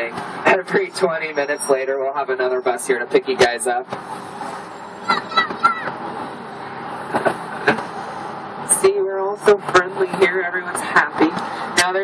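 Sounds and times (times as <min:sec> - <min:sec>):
motor vehicle noise: 0:00.0 - 0:12.0.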